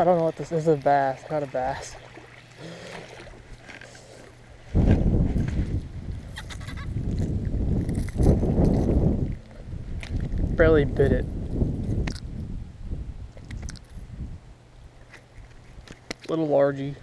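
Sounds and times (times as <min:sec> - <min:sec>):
wind buffeting microphone: 0:04.5 - 0:15.9.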